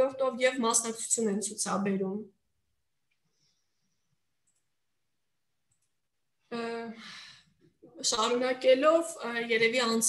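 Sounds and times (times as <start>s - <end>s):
woman speaking: 0.0s - 2.4s, 7.8s - 10.0s.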